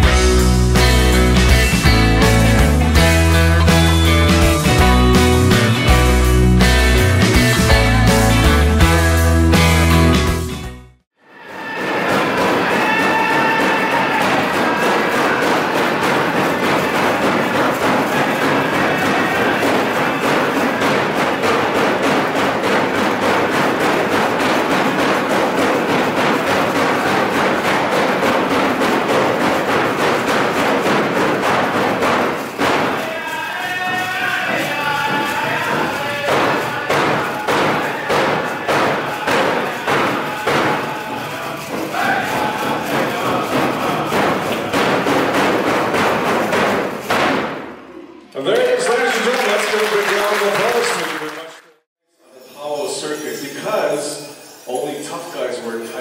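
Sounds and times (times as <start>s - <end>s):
drum beaten in steady rhythm: 0.0s - 10.8s, 12.1s - 47.7s
people singing: 11.4s - 30.4s, 31.5s - 46.6s.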